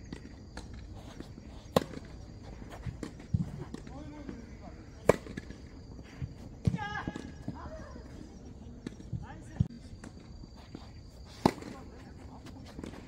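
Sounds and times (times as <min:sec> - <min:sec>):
racket hitting tennis ball: 0:01.7 - 0:03.9, 0:05.0 - 0:05.5, 0:11.3 - 0:11.8.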